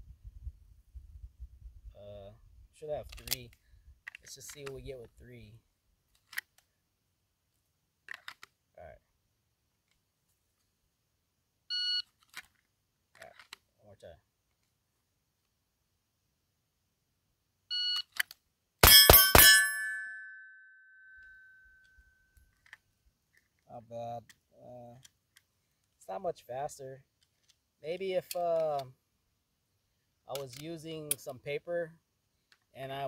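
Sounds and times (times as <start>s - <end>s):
pistol shots: 18.8s - 19.9s
shot timer beeps: 18.8s - 20.4s
steel target ringing: 18.8s - 21.2s.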